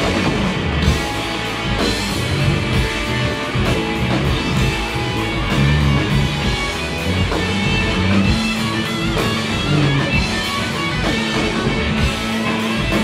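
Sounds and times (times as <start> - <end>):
drums keeping a steady beat: 0.0 - 13.0
electric guitars: 0.0 - 13.0.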